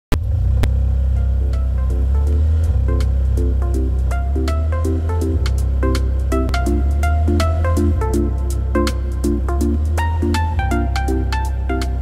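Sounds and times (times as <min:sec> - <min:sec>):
deep sustained bass: 0:00.1 - 0:12.0
short chord stabs: 0:01.2 - 0:12.0.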